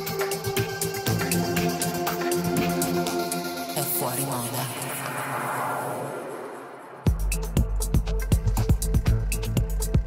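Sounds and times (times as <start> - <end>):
beatless electronic dance music: 0.0 - 10.0.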